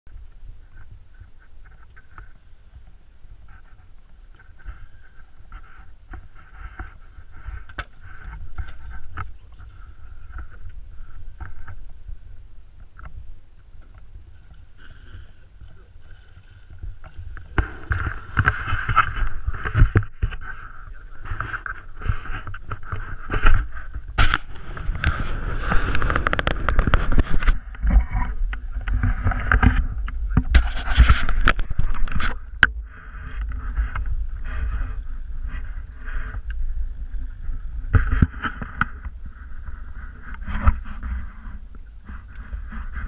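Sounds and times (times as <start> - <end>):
wind buffeting microphone: 15.6 - 43.0
whirring tone: 17.1 - 43.0.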